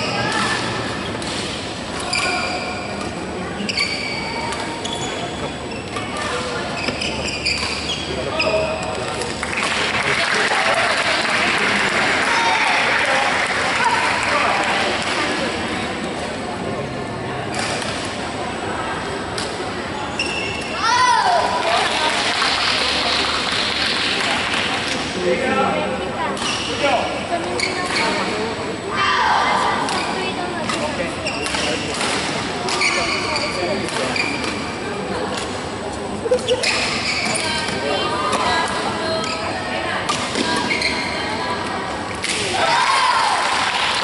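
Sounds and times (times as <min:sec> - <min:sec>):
background chatter: 0:00.0 - 0:44.0
echoing sports hall noise: 0:00.0 - 0:44.0
voices: 0:00.0 - 0:44.0
shoes squeaking on court floor: 0:02.0 - 0:09.1, 0:20.0 - 0:20.8, 0:27.5 - 0:28.3, 0:29.9 - 0:32.0, 0:32.6 - 0:34.8, 0:36.3 - 0:38.6, 0:39.2 - 0:41.4.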